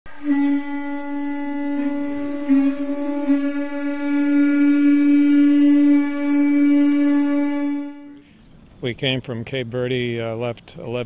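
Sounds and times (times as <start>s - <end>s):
horn long steady note: 0.1s - 9.0s.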